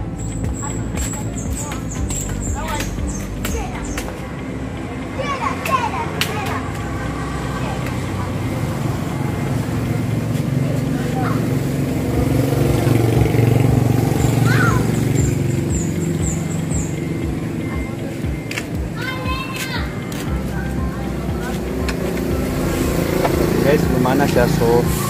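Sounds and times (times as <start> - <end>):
small car engine idling: 6.9 - 19.1, 20.3 - 25.0.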